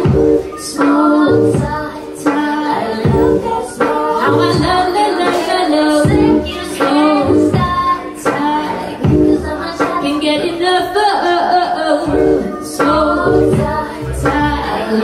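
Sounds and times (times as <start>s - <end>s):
lofi hip-hop beat: 0.0s - 15.0s
woman singing into a microphone: 0.0s - 15.0s.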